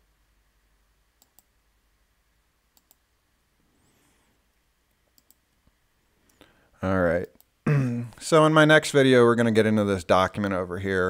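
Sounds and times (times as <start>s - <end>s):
faint computer mouse clicks: 1.2s - 1.5s, 2.7s - 3.0s, 5.1s - 5.4s.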